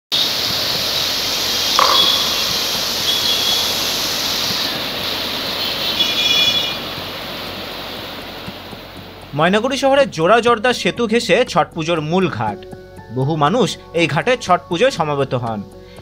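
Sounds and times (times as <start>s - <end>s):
river water rushing over rapids: 0.2s - 9.3s.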